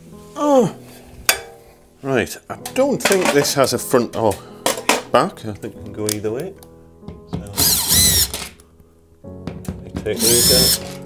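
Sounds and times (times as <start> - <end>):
cordless drill whirring: 7.6 - 8.5, 10.2 - 11.0.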